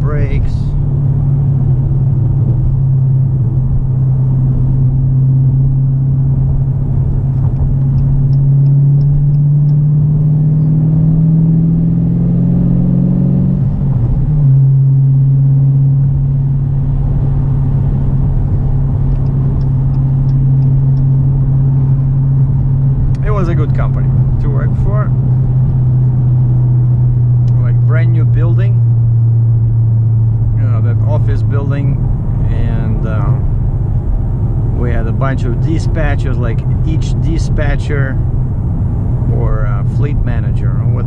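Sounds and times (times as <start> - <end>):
car engine drone: 0.0 - 41.0
road noise: 0.0 - 41.0.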